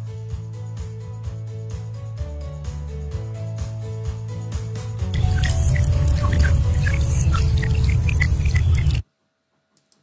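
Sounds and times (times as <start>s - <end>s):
high plinks: 5.2s - 9.0s.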